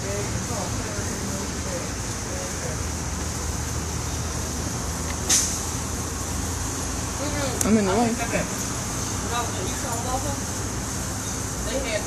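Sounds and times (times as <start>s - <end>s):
road traffic rumble: 0.0s - 12.0s
brief hiss: 5.2s - 5.7s.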